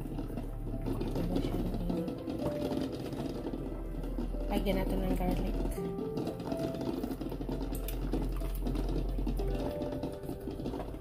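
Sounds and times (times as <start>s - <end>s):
faint background music: 0.0s - 11.0s
garlic frying in oil: 0.0s - 11.0s.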